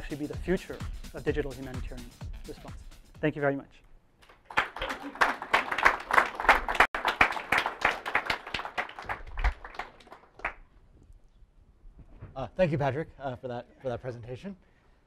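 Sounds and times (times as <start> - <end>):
audience applauding: 4.3 - 10.6.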